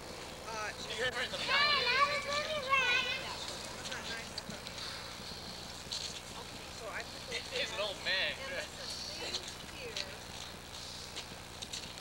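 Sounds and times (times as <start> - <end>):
children's voices calling out: 1.3 - 3.9.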